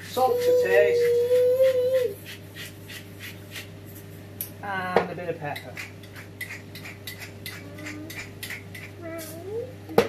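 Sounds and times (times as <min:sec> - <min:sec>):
salt grinder grinding: 0:05.8 - 0:09.4.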